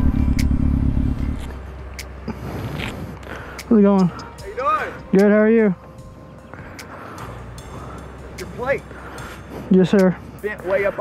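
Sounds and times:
motorcycle engine idling: 0:00.0 - 0:01.6.

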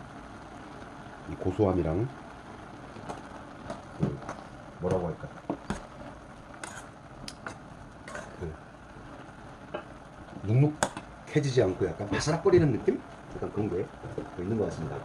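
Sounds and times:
liquid simmering hiss: 0:00.0 - 0:15.0
metal spoon scraping a pot: 0:06.6 - 0:08.4.

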